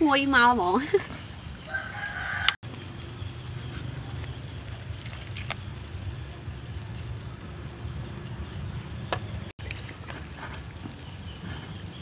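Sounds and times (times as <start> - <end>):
rooster crowing: 1.7 - 2.6.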